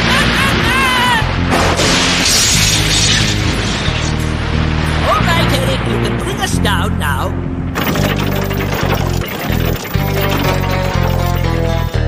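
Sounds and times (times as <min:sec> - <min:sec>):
background music: 0:00.0 - 0:12.0
crackling lightning crash: 0:01.5 - 0:05.1
warbling tone: 0:07.8 - 0:12.0.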